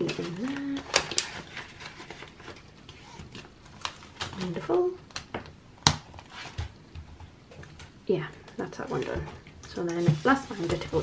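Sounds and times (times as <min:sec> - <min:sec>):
soft plastic rustling: 0:00.0 - 0:05.0, 0:07.5 - 0:11.0.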